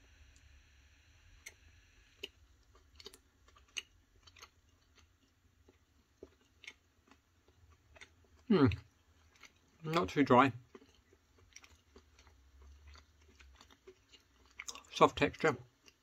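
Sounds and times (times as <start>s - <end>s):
low room hum: 0.0s - 16.0s
chewing with mouth clicks: 2.2s - 16.0s.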